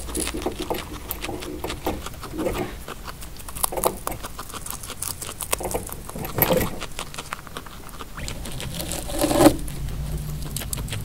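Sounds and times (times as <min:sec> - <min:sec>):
guinea pig chewing hay: 0:00.0 - 0:11.0.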